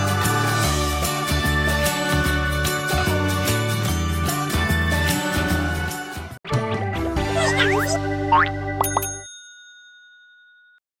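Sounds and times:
cartoonish jingle: 7.3s - 10.6s
bell-like chime ding: 8.8s - 10.8s.

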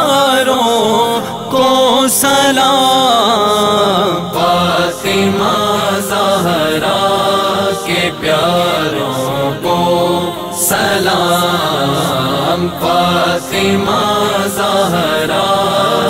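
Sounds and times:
men singing slow devotional song: 0.0s - 16.0s.

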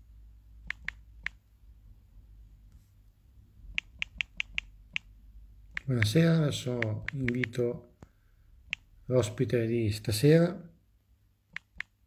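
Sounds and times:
sharp light clicks: 6.8s - 7.6s.

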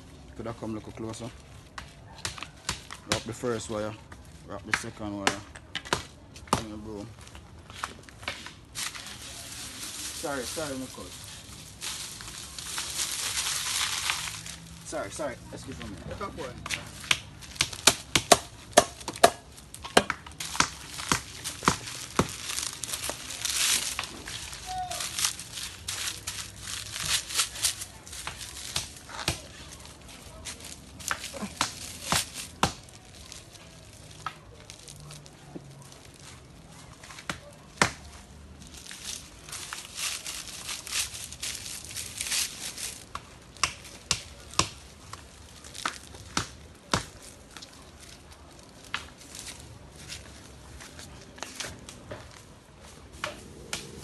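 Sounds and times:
broom straw crackling and rustling: 6.2s - 54.0s.

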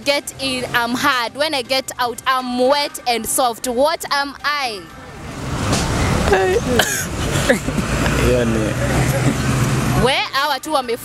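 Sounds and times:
vehicle engine rumbling: 0.0s - 11.0s
people laughing: 6.3s - 9.4s.

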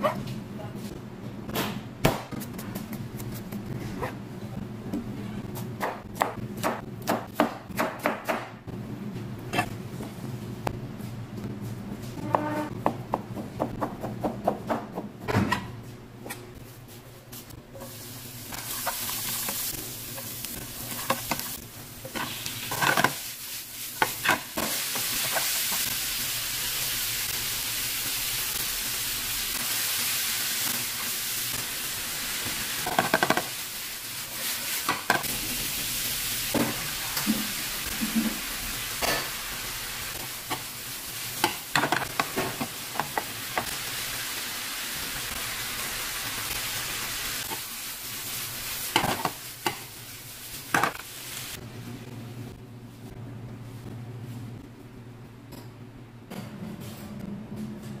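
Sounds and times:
meat and vegetables sizzling in oil: 17.8s - 51.6s.

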